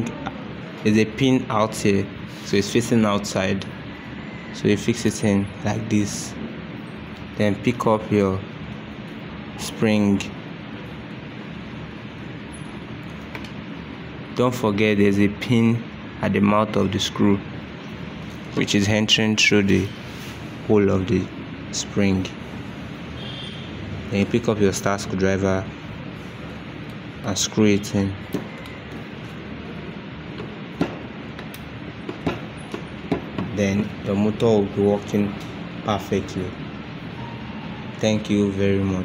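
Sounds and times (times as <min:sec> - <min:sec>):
background hiss and hum: 0:00.0 - 0:39.0.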